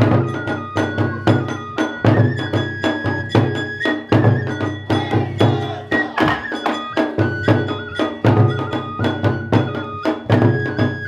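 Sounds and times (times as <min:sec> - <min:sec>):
bamboo flute long notes: 0:00.0 - 0:11.0
taiko drum beats: 0:00.0 - 0:11.0.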